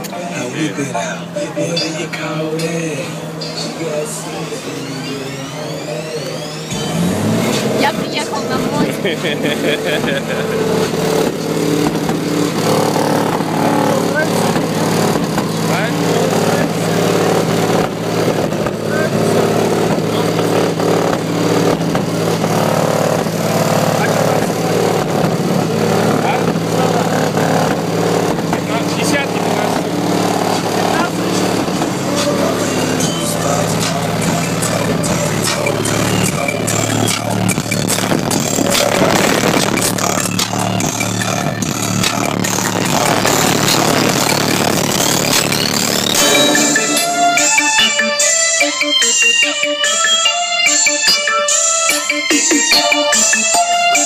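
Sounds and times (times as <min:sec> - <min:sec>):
bass-heavy music with vocals: 0:00.0 - 0:54.0.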